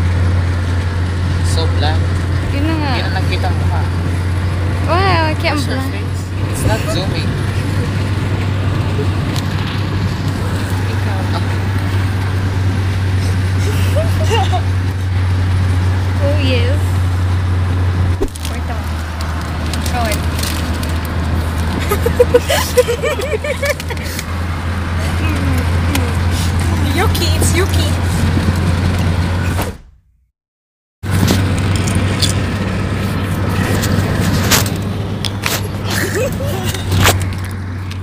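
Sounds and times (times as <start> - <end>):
car interior rumble: 0.0 - 29.9, 31.0 - 38.0
faint passenger voices: 4.9 - 11.9.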